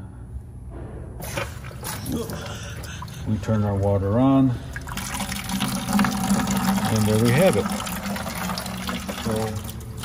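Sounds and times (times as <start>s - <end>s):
water pump running: 1.2s - 10.0s.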